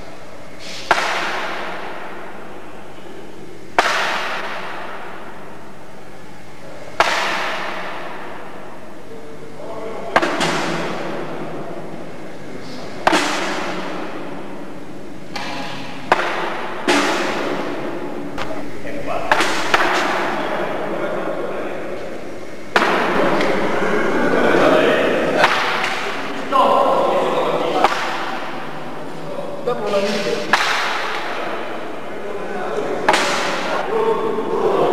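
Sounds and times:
chatter of onlookers: 20.3s - 27.8s.

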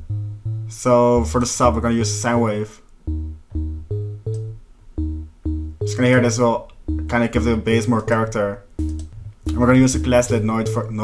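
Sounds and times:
plucky synth bassline: 0.0s - 11.0s.

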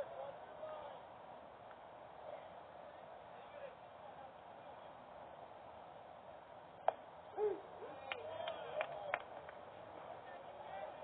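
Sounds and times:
people shouting calls: 7.3s - 9.2s.

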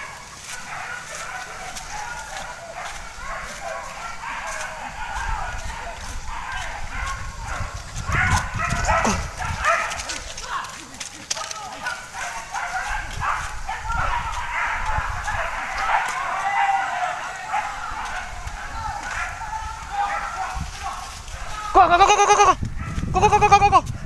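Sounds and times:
brushing through undergrowth: 0.0s - 24.0s
dogs barking and yelping: 0.0s - 24.0s
running footsteps: 0.0s - 24.0s.

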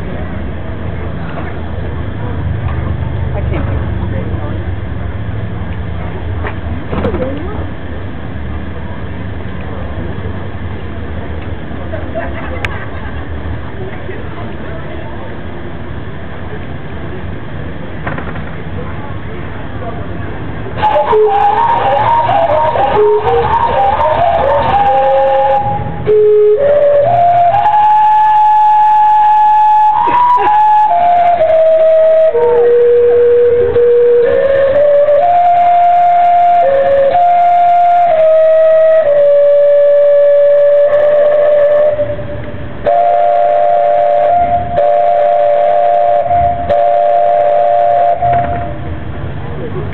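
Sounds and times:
steam whistles playing a tune: 20.7s - 49.0s.

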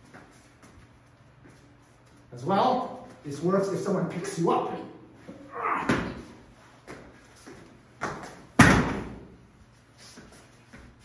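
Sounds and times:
scuffles of feet on mat: 0.0s - 2.3s, 6.6s - 8.4s, 9.6s - 11.0s
body slamming onto mat: 8.0s - 9.3s.

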